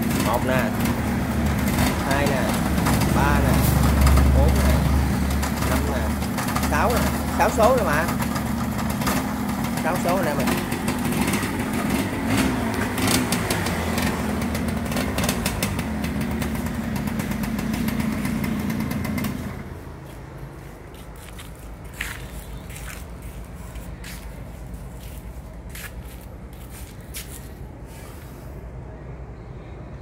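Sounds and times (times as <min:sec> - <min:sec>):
two-stroke motorcycle engine: 0:00.0 - 0:20.2.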